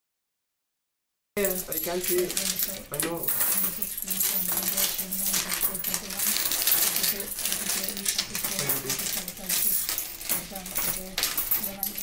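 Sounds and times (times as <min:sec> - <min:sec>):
coins clinking and sliding: 0:01.4 - 0:12.0.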